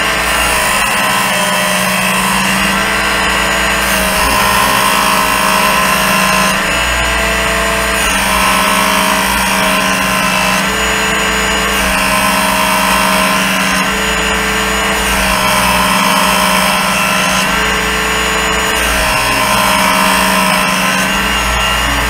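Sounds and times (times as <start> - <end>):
belt sharpener grinding blade: 0.0 - 22.0.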